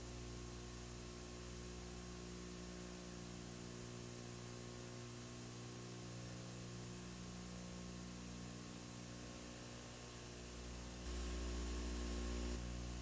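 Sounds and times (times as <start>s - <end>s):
low electrical hum with hiss: 0.0s - 13.0s.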